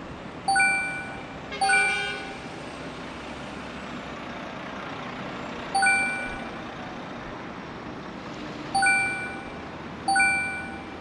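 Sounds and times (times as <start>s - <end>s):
street traffic noise: 0.0s - 11.0s
bright electronic ding: 0.5s - 2.6s, 5.8s - 6.7s, 8.8s - 11.0s.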